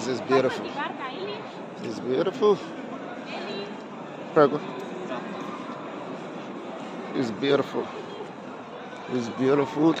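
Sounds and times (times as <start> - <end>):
busy city square ambience: 0.0 - 10.0.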